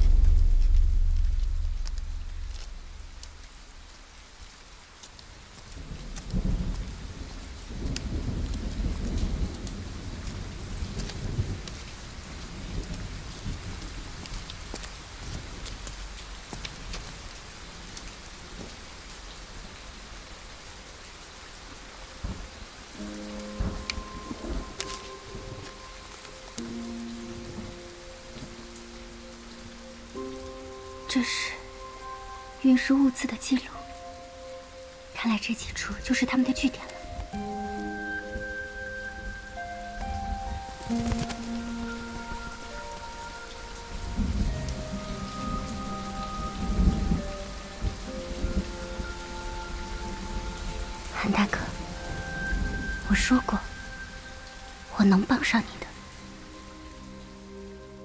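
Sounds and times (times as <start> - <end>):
thunder rumbling: 0.0 - 4.8, 5.6 - 16.9, 22.2 - 31.8
steady rain: 0.0 - 58.0
soft music with held notes: 21.2 - 58.0.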